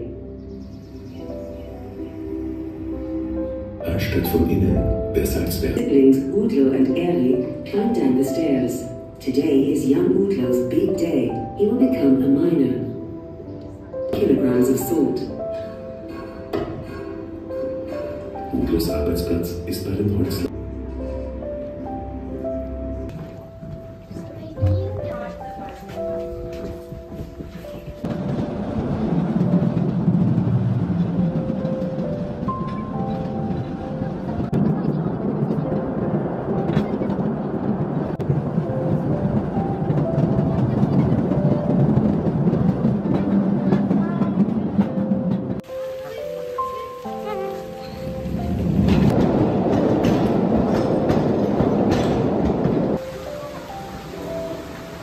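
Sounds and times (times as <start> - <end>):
soft music with held notes: 0.0 - 55.0
mine train rumbling on rails: 1.2 - 13.0, 21.4 - 55.0.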